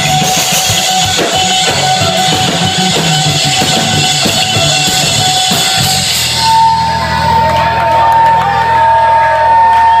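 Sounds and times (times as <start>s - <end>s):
electric guitar tone ringing: 0.0s - 8.0s
audience whooping and shouting: 4.4s - 10.0s.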